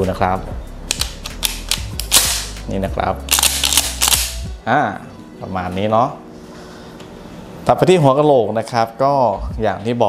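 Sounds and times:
shotgun being racked: 0:00.9 - 0:02.6, 0:03.3 - 0:04.5.

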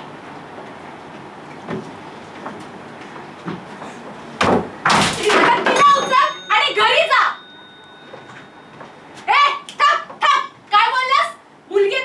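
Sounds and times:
girl shouting: 0:05.2 - 0:07.4, 0:09.2 - 0:12.0.

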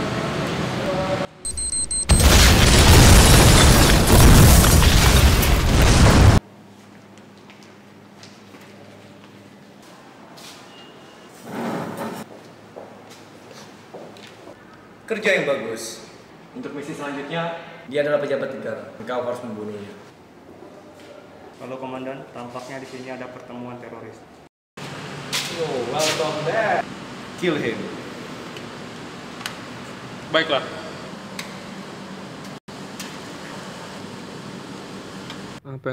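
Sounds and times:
plastic chair scraping on floor: 0:11.4 - 0:12.3.

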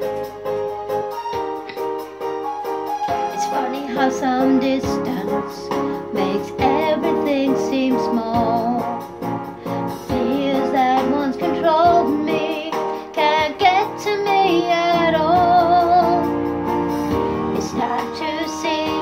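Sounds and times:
instrumental accompaniment: 0:00.0 - 0:19.0
woman singing pop ballad: 0:03.1 - 0:09.1, 0:09.9 - 0:16.4, 0:17.5 - 0:19.0.

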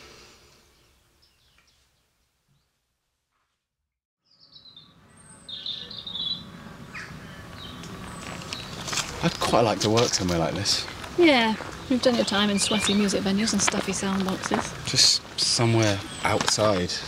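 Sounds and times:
birds chirping: 0:00.0 - 0:02.8, 0:04.2 - 0:17.0.

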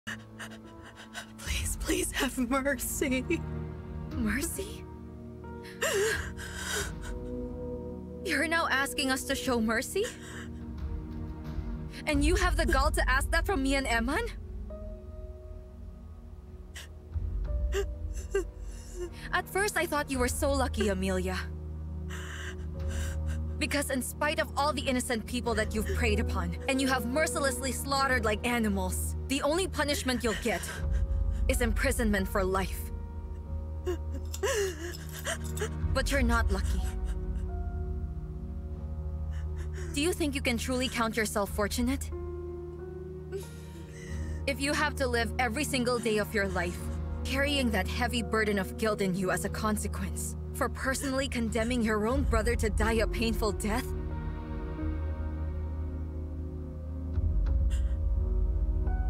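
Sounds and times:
background music with low drone: 0:00.0 - 0:59.0
woman sobbing: 0:00.1 - 0:03.5, 0:05.6 - 0:07.5, 0:09.9 - 0:10.6, 0:12.1 - 0:13.1, 0:17.7 - 0:19.8, 0:22.1 - 0:24.2, 0:25.5 - 0:27.0, 0:29.4 - 0:31.8, 0:33.8 - 0:37.7, 0:39.3 - 0:41.2, 0:43.3 - 0:44.9, 0:45.7 - 0:46.6.

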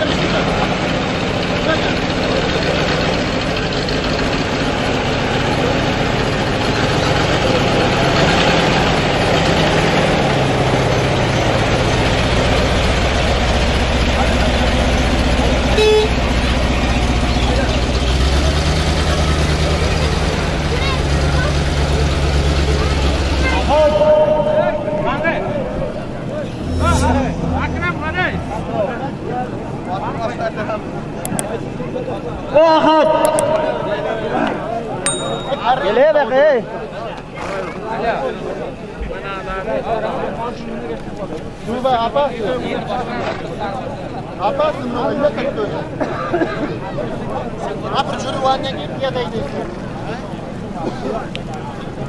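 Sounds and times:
truck engine rumbling: 0:00.0 - 0:32.5
people's voices: 0:00.0 - 0:52.0
horn toots: 0:15.7 - 0:16.2.

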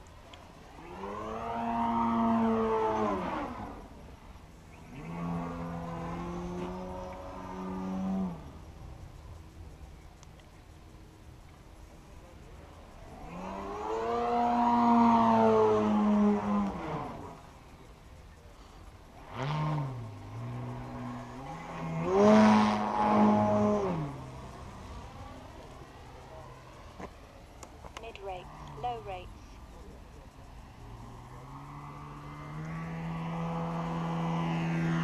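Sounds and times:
model plane engine and propeller: 0:00.0 - 0:35.0.

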